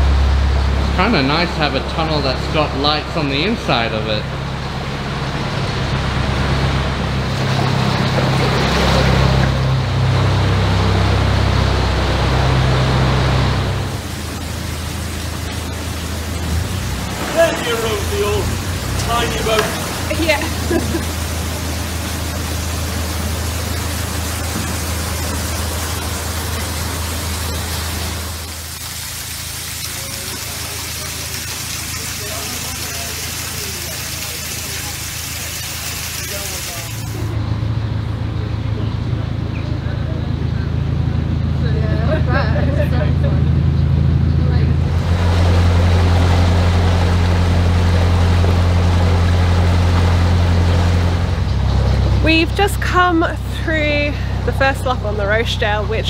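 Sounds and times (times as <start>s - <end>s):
water churning into lock: 0.0s - 37.4s, 44.8s - 56.0s
boat engine running: 0.0s - 56.0s.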